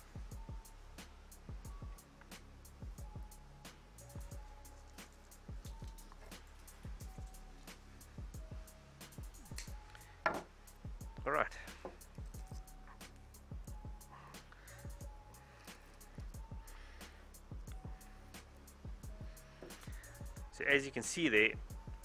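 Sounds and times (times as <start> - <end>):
music with steady drum beat: 0.0 - 22.0.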